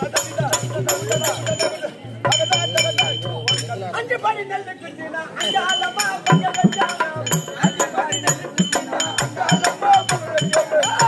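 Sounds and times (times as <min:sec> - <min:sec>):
hand cymbals ringing: 0:00.0 - 0:04.0, 0:05.4 - 0:11.0.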